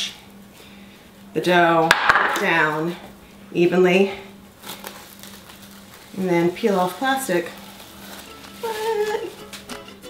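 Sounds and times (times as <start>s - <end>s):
plastic wrap crinkling: 4.6s - 10.0s.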